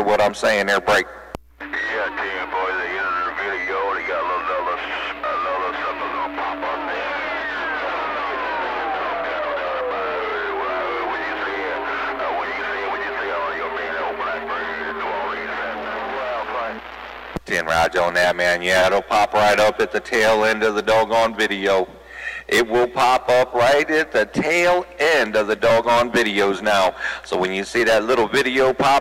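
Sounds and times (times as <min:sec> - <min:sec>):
garbled radio voices: 0:01.6 - 0:21.8.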